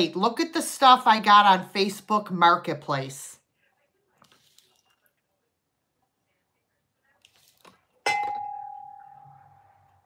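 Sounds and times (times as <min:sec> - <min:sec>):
glass candle holder clinking: 0:08.0 - 0:09.3.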